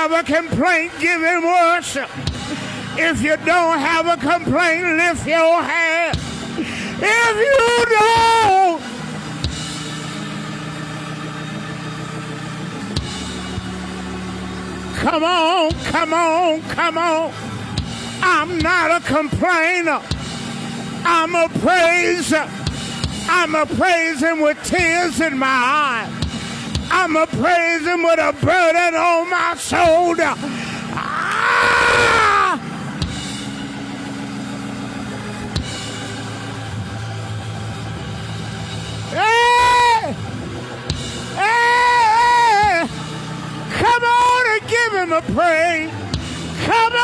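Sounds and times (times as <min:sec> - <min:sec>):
keyboard sustained low chords: 0:00.0 - 0:47.0.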